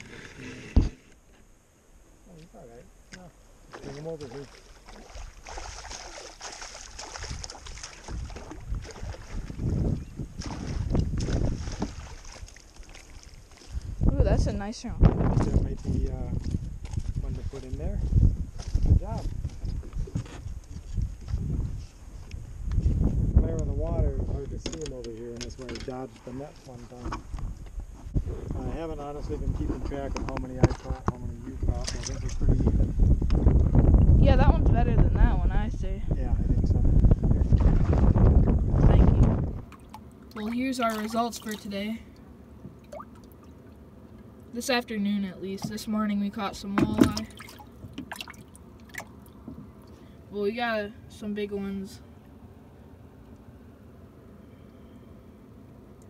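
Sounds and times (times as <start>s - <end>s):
water splashing and dripping: 3.7s - 9.8s, 10.4s - 13.9s, 39.7s - 41.8s, 42.7s - 43.8s, 46.8s - 49.4s.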